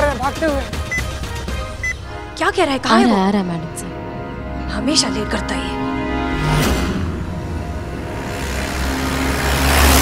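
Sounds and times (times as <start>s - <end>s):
background music: 0.0s - 10.0s
jeep engine and tyres passing: 6.3s - 10.0s.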